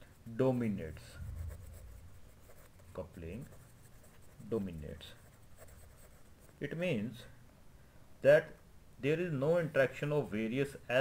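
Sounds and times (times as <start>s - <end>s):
pen scratching on paper: 1.2s - 6.6s.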